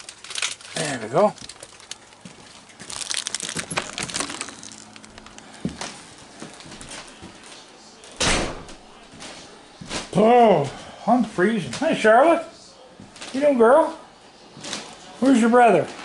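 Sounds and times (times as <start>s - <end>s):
door shutting: 8.2s - 8.8s.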